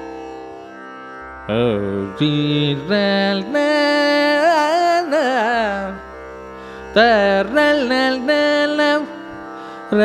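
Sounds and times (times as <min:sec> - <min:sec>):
man singing with ornamented slides: 0:01.4 - 0:10.0.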